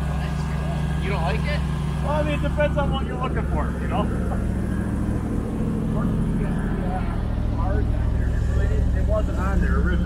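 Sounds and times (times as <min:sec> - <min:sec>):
faint conversation: 0:00.0 - 0:10.0
vehicle engine idling: 0:00.0 - 0:10.0.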